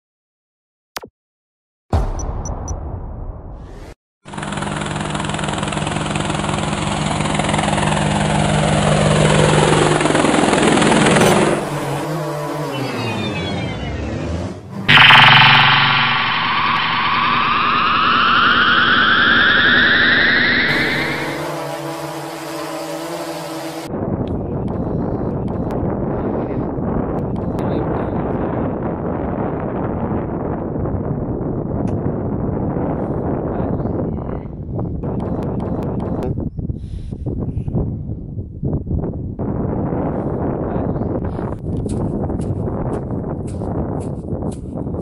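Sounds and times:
loud hit: 1.9s - 4.0s, 14.9s - 21.6s
motor hum with falling sweeps: 8.4s - 23.9s
rising whine: 10.2s - 23.9s
wind noise on microphone: 23.9s - 45.0s.

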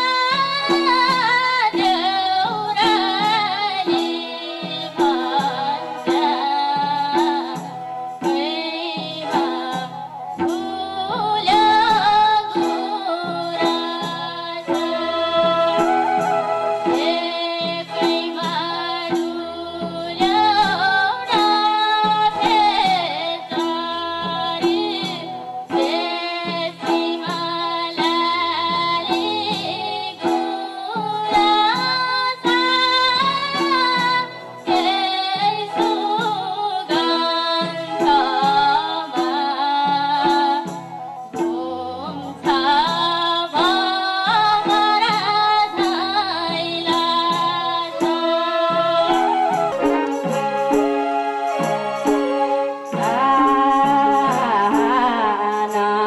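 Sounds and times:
instrumental accompaniment with beat: 0.0s - 56.0s
woman singing folk song: 0.0s - 56.0s.

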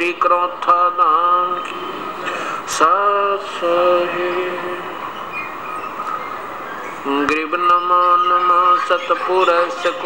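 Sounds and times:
man chanting: 0.0s - 5.1s, 7.0s - 10.0s
steady background hiss: 0.0s - 10.0s.

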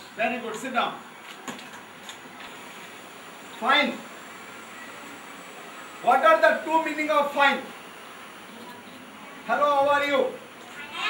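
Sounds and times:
steady low hiss: 0.0s - 11.0s.

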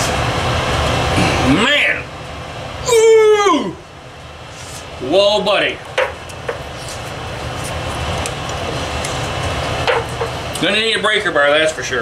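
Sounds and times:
furnace low rumble: 0.0s - 12.0s.

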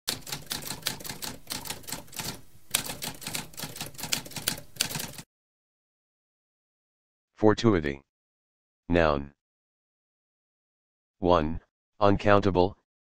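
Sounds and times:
typewriter keys clacking: 0.1s - 5.2s.

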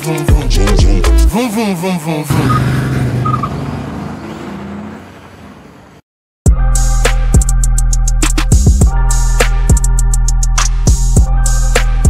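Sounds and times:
singing over a beat: 0.0s - 2.6s.

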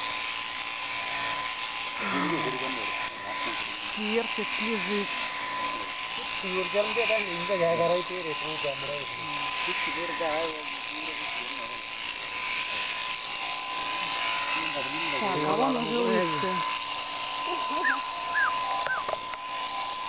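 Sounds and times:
electric shearing machine buzzing: 0.0s - 20.0s.

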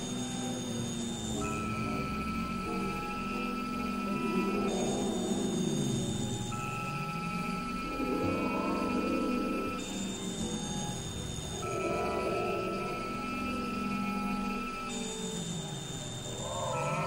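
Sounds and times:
electronic drone music: 0.0s - 17.0s
thin steady high tones: 0.0s - 17.0s
warbling mid-range tones: 1.4s - 14.8s.

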